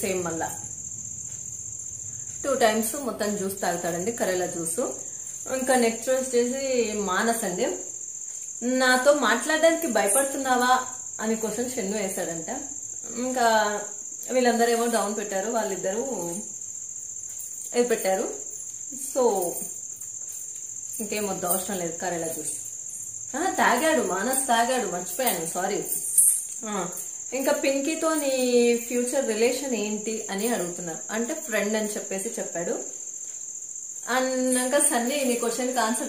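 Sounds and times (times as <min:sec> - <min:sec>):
woman talking: 0:00.0 - 0:00.7, 0:02.4 - 0:07.9, 0:08.6 - 0:16.4, 0:17.7 - 0:19.7, 0:21.0 - 0:22.7, 0:23.3 - 0:32.9, 0:34.1 - 0:36.0
woman's voice: 0:00.0 - 0:00.7, 0:02.4 - 0:07.9, 0:08.6 - 0:16.4, 0:17.7 - 0:19.7, 0:21.0 - 0:22.7, 0:23.3 - 0:32.9, 0:34.0 - 0:36.0
faint room noise: 0:00.0 - 0:36.0.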